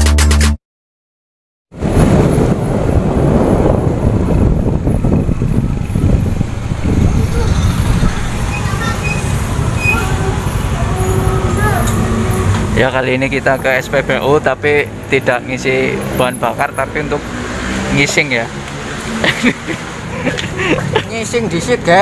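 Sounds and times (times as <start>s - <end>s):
motorbike engine rumbling: 1.8s - 16.3s.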